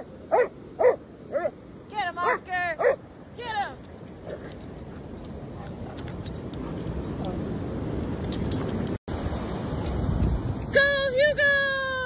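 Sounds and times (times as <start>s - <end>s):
dog tags jingling: 3.3s - 10.7s.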